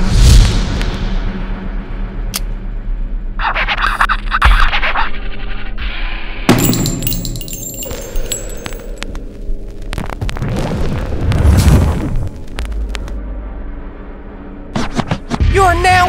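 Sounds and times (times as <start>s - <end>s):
shell casings clinking on floor: 6.5s - 9.0s.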